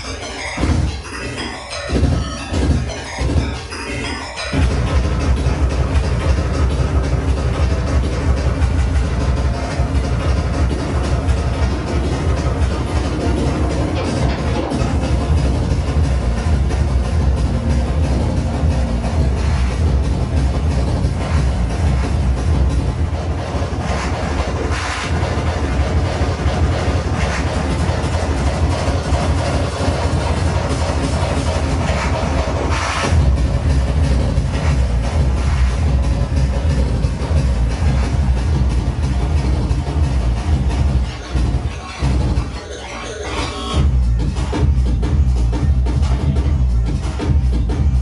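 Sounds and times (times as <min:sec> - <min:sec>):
breakcore through sound system: 0:00.0 - 0:48.0.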